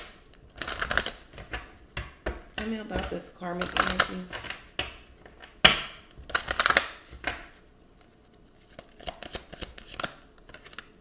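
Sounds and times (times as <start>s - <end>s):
cards riffling: 0.0s - 2.6s, 6.2s - 11.0s
cards tapping on wooden table: 1.4s - 7.5s.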